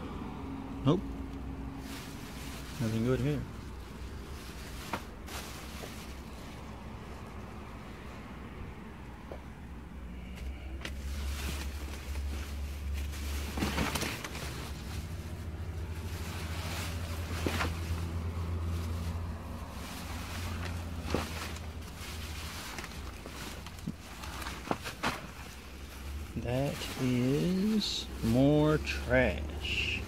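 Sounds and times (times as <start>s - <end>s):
plastic bags rustling: 1.7s - 6.7s, 10.9s - 30.0s.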